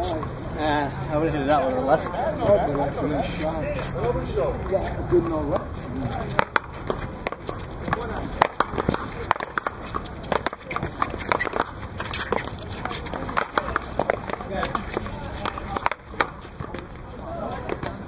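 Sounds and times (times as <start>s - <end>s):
ball cracking off wooden paddles: 6.3s - 16.9s.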